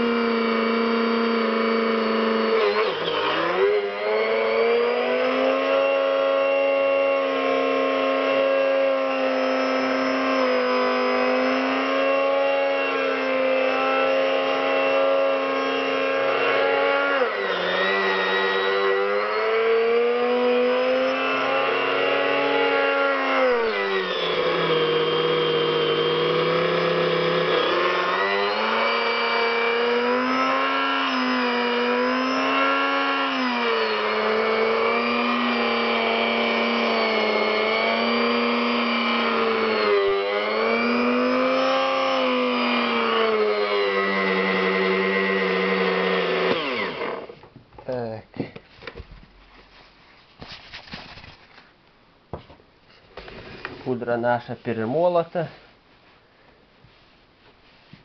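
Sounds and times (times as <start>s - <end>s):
electric grinder motor whine: 0.0s - 47.4s.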